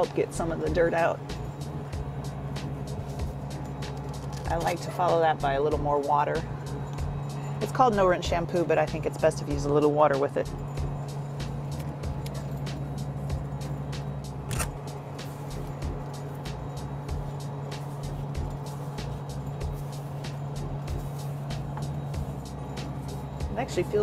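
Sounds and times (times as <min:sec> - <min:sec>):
cabin fans and machinery hum: 0:00.0 - 0:24.0.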